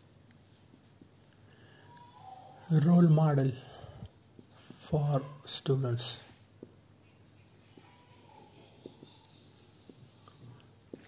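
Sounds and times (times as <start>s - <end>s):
marker writing on whiteboard: 0.0s - 1.4s, 4.3s - 5.4s, 6.2s - 11.0s.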